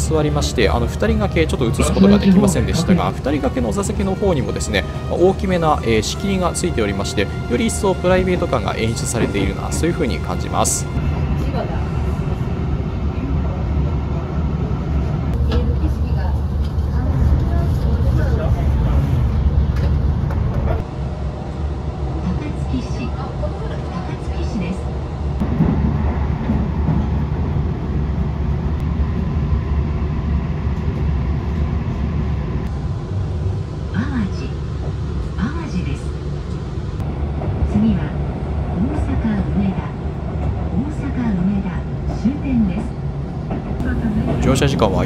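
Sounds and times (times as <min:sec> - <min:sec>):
train running rumble: 0:00.0 - 0:45.0.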